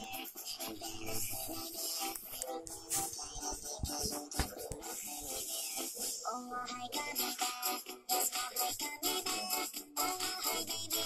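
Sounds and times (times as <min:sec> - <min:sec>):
music through laptop speakers: 0:00.0 - 0:11.0.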